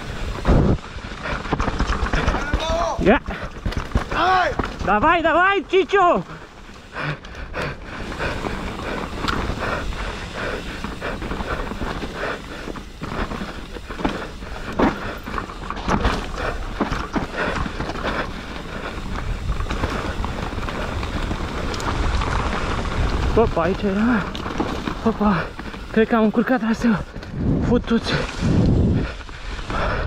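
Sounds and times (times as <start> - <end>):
wind rumbling on microphone: 0.0 - 4.9, 7.4 - 26.0, 27.0 - 30.0
bike rattling over bumps: 0.0 - 30.0
bike tyres on dirt and leaves: 0.0 - 30.0.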